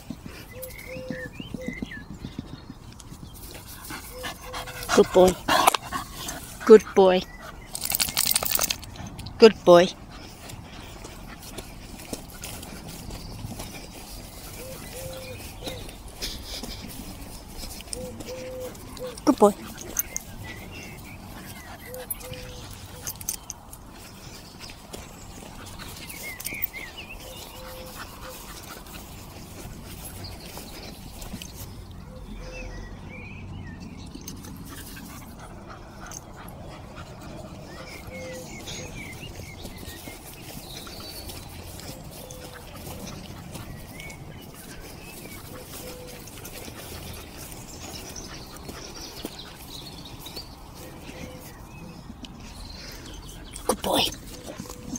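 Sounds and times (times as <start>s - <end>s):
rustling on grass: 10.0s - 31.9s, 37.9s - 54.9s.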